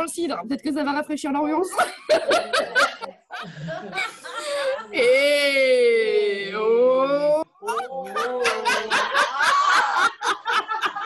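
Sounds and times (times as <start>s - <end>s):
women laughing: 1.8s - 5.1s, 7.6s - 11.0s.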